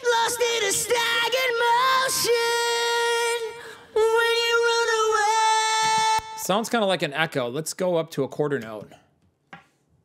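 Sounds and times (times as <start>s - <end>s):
man singing high notes with echo: 0.0s - 6.6s.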